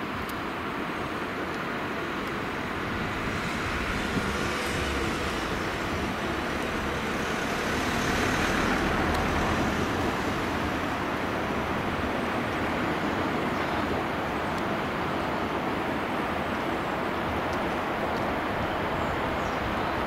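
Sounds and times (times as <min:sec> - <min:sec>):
motorway traffic rushing: 0:00.0 - 0:20.0
river water running over weir: 0:00.0 - 0:20.0.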